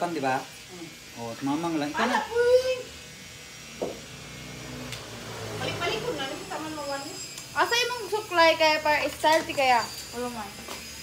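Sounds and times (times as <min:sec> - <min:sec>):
electric hair clipper humming: 0:00.0 - 0:11.0.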